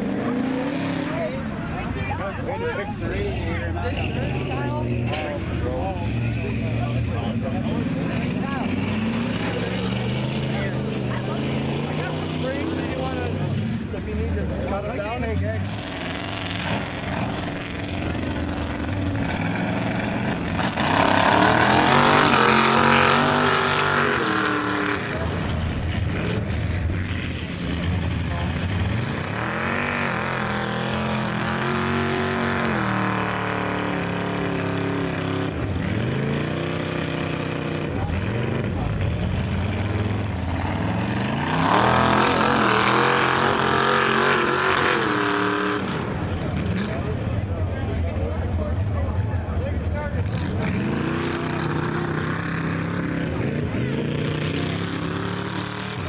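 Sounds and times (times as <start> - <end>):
truck engines revving: 0.0 - 56.0.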